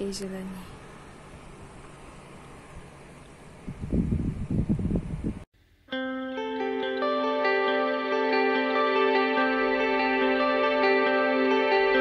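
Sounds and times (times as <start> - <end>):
calm instrumental music: 5.9 - 12.0.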